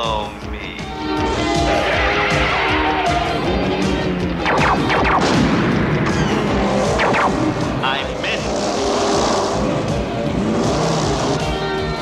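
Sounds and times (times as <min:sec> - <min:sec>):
background music score: 0:00.0 - 0:12.0.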